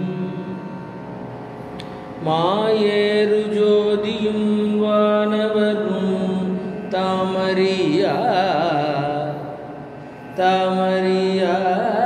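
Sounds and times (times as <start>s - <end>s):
steady drone: 0.0s - 12.0s
man singing devotional hymn: 2.2s - 9.7s, 10.3s - 12.0s.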